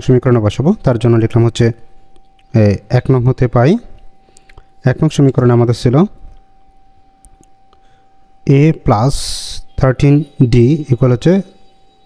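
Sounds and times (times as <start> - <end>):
faint steady tone: 0.0 - 12.0.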